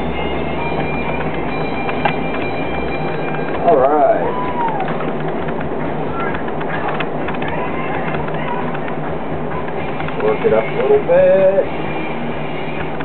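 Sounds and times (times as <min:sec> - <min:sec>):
potter's wheel humming: 0:00.0 - 0:13.0.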